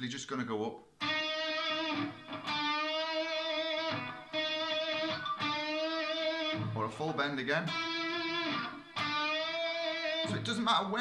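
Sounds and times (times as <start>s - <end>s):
electric guitar note bending: 1.0s - 6.8s, 7.7s - 10.5s.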